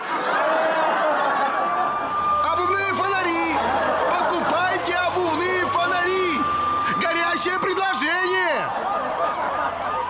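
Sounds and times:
fire engine siren yelping: 0:01.0 - 0:10.0.

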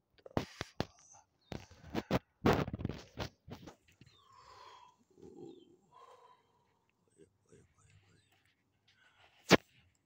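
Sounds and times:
faint birdsong: 0:00.1 - 0:10.0
dove cooing: 0:04.1 - 0:06.3.

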